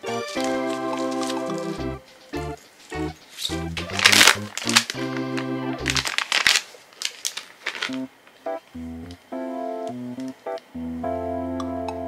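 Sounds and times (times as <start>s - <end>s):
light background music: 0.0s - 6.1s, 7.9s - 12.0s
plastic packaging crinkling: 0.2s - 1.8s, 2.8s - 8.3s.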